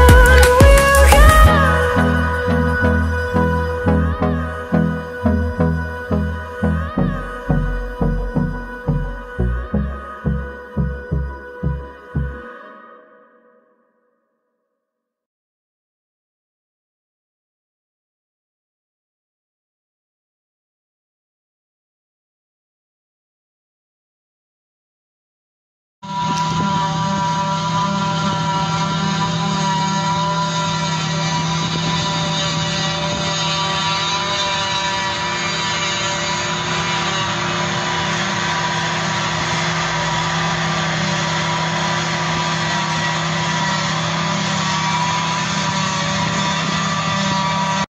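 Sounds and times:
forage harvester engine and chopper: 0.0 - 12.3, 26.1 - 47.9
truck running alongside: 0.0 - 12.4, 26.1 - 47.9
constant machine whine: 0.0 - 12.5, 26.0 - 47.9.

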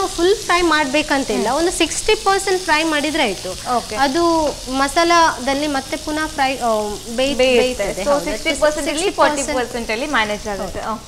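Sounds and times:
food sizzling in a frying pan: 0.0 - 11.0
woman talking: 0.0 - 11.0.

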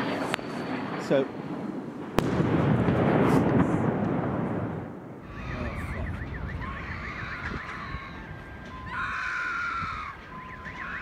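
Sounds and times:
electronic alarm yelping sweeps: 5.2 - 11.0
steady alarm tone: 10.1 - 11.0.

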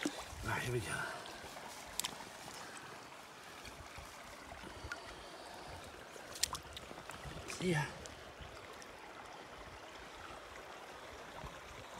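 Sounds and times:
river water flowing: 0.0 - 11.9.

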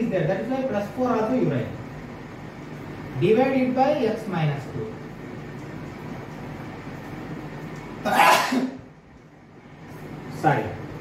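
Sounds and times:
man sneezing: 8.1 - 8.8.

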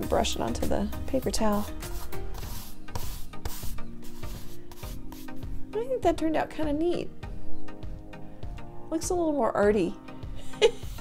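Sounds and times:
hand rubbing salt off paper: 1.4 - 5.5.

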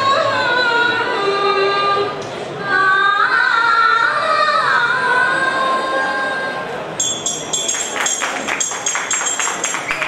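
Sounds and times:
metallic rhythmic strikes: 7.0 - 10.0.

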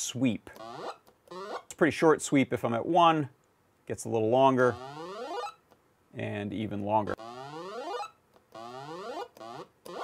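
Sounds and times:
chiptune rising pitch sweeps: 4.7 - 5.6, 7.2 - 10.0.

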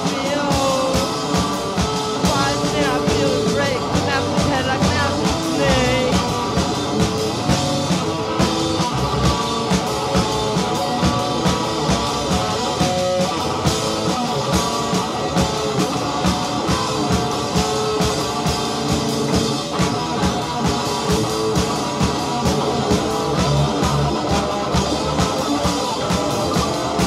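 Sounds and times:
punk rock band playing: 0.0 - 27.0.

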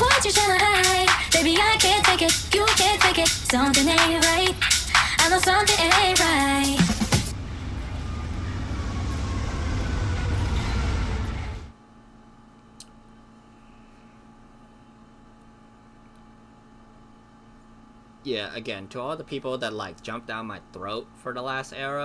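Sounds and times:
low room hum: 0.0 - 22.0
street traffic rumble and hiss: 5.9 - 11.7
click: 12.8 - 13.0.

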